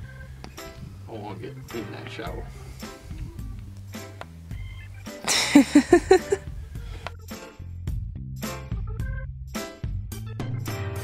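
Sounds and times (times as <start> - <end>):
background music: 0.0 - 11.0
man laughing: 5.3 - 6.4.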